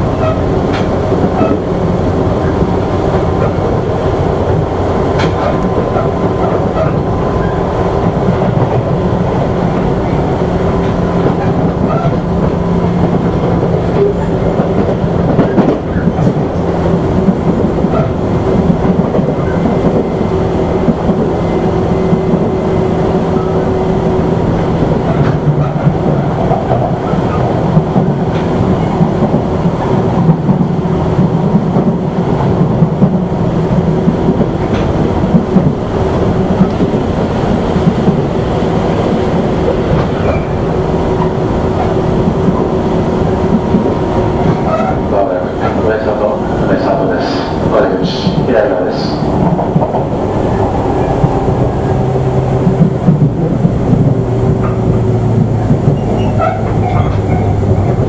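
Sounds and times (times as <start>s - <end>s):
wheels clicking over rail joints: 0.0s - 48.5s, 49.3s - 58.0s
electric train running: 0.0s - 58.0s.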